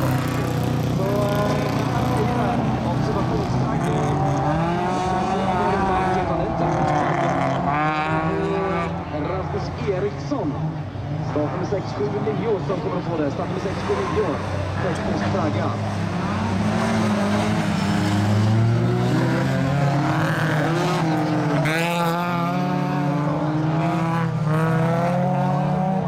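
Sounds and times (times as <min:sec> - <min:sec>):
race car engines revving: 0:00.0 - 0:26.0.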